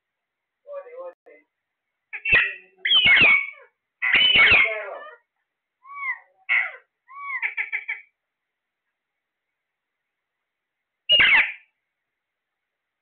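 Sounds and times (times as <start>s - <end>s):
parakeets screeching: 2.1s - 5.2s, 5.9s - 8.1s, 11.1s - 11.7s
parakeet chattering: 2.1s - 8.1s, 11.1s - 11.7s
parakeet whistles: 2.3s - 4.7s, 11.1s - 11.6s.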